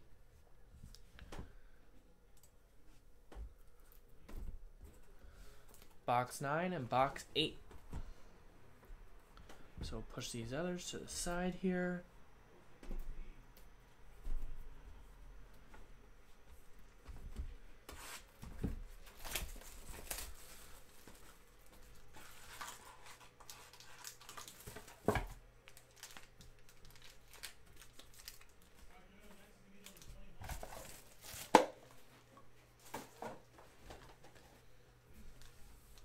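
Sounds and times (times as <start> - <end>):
foil packs crinkling: 19.0 - 21.1, 21.7 - 28.8, 29.7 - 31.7.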